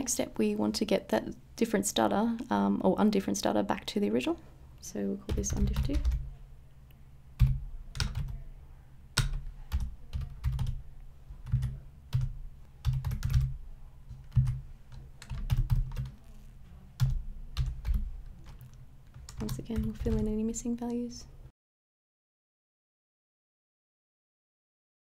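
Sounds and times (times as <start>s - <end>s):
typing on computer keyboard: 5.3s - 6.3s, 7.4s - 8.4s, 9.2s - 10.8s, 11.4s - 16.3s, 17.0s - 20.4s.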